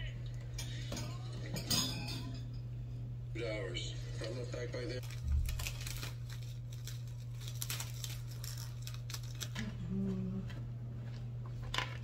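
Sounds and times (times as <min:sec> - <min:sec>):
steady low hum: 0:00.0 - 0:12.0
plastic cling wrap crinkling: 0:05.0 - 0:09.8.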